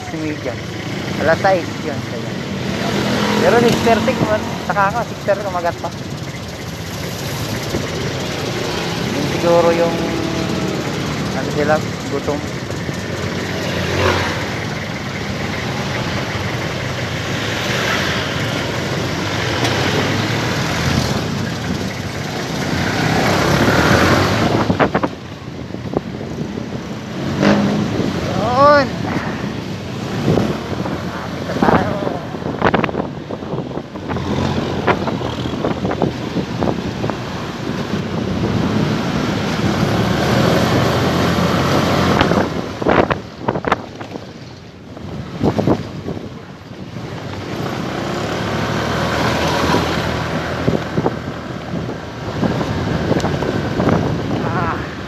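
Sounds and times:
wind and road noise: 0.0 - 55.0
motorcycle engine running: 2.4 - 26.8.

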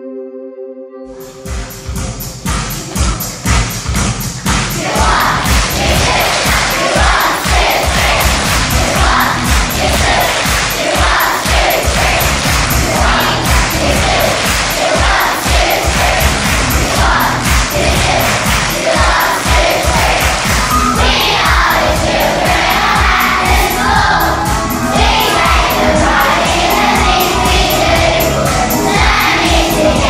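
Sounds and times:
backing track with steady beat: 1.1 - 30.0
children clapping: 4.5 - 20.9
children singing along: 4.6 - 30.0.

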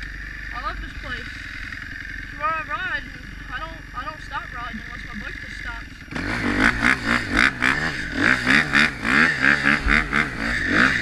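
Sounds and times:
tyres on gravel: 0.0 - 8.2
dirt bike engine running: 0.0 - 11.0.

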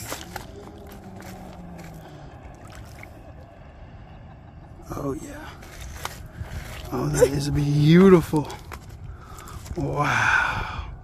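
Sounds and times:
moving water: 0.0 - 10.8
wind on microphone: 0.0 - 11.0.

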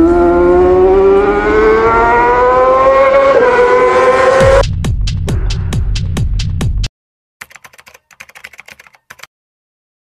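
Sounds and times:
rapid keyboard typing: 7.4 - 9.3.

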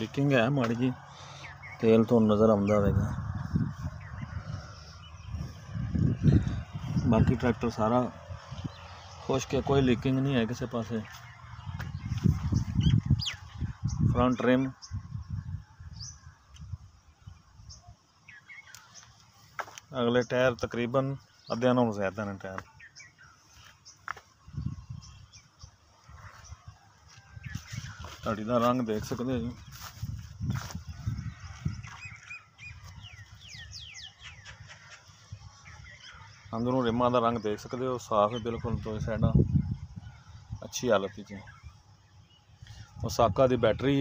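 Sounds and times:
wind buffeting microphone: 0.0 - 17.9, 24.4 - 36.5, 38.3 - 40.7
birds chirping: 0.0 - 44.0.

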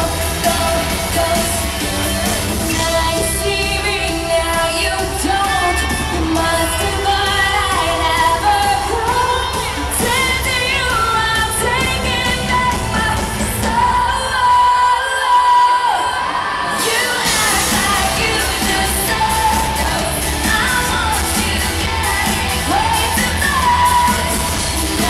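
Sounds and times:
live pop-rock band playing: 0.0 - 25.0
person singing: 0.0 - 25.0.

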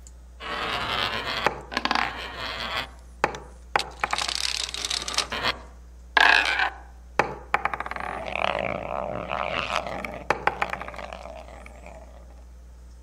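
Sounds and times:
dominoes clicking and clattering: 3.9 - 5.5.

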